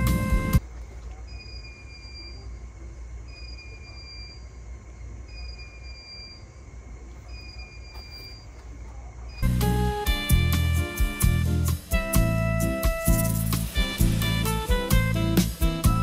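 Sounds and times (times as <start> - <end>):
background music: 0.0 - 0.6, 9.4 - 16.0
faint high beep: 3.3 - 4.4.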